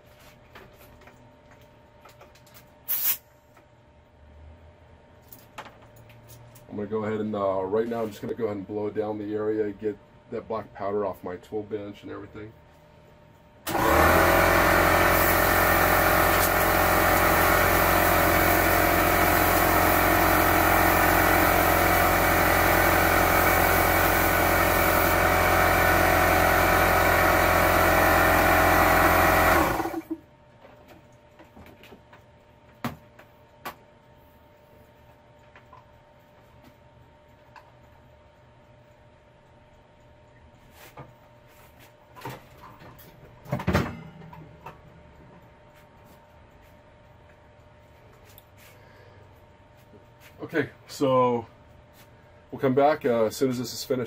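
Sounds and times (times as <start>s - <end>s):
motor humming: 13.7s - 30.2s.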